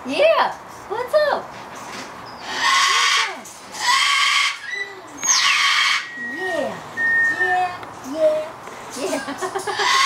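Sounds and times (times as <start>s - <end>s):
parrots squawking: 2.4s - 6.4s, 9.6s - 10.0s.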